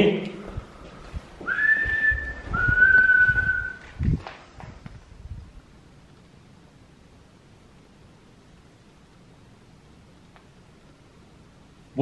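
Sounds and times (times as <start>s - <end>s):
person whistling two notes: 1.4s - 3.9s.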